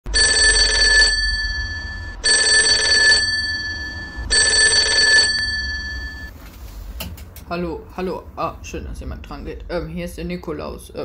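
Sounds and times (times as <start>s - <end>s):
payphone ringing: 0.1s - 6.3s.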